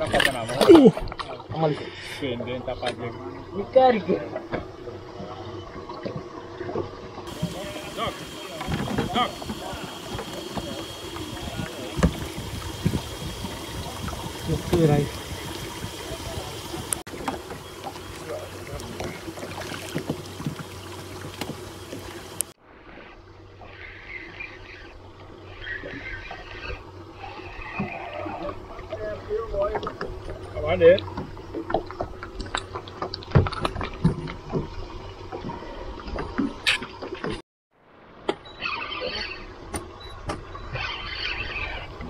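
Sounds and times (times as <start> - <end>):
water washing: 0.0 - 22.6
wind: 0.0 - 42.0
fishing reel spinning: 7.3 - 17.0.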